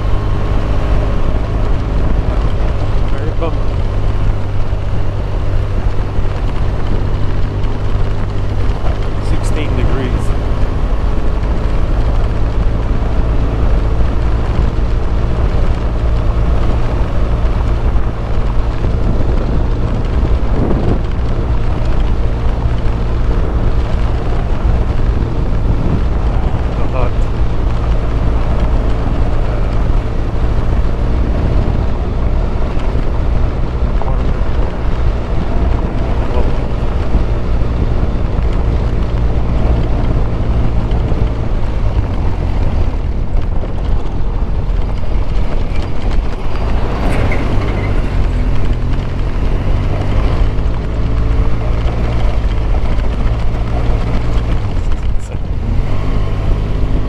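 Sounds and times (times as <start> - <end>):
motorcycle engine running: 0.0 - 57.0
wind noise on microphone: 0.0 - 57.0.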